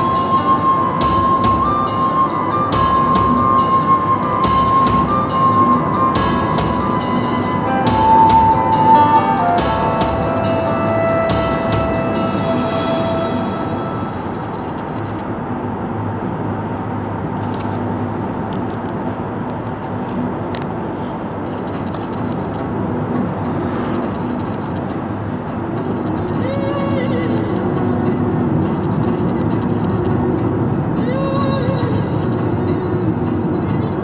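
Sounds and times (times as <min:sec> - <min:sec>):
car driving with road rumble: 0:00.0 - 0:34.0.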